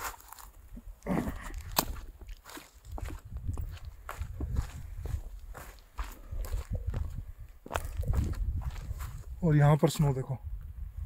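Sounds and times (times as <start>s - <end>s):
footsteps crunching on dry grass: 0.0s - 10.1s.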